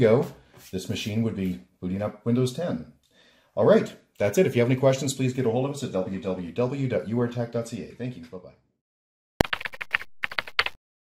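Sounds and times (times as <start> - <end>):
keyboard typing clicks: 9.4 - 10.8.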